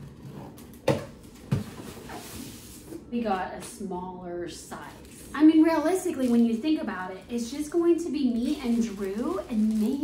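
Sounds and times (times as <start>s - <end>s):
cardboard rustling and scraping: 1.3s - 3.0s.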